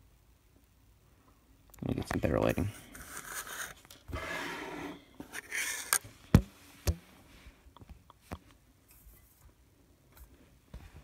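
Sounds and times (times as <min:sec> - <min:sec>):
phone handling rubbing and scraping: 0:02.5 - 0:06.5.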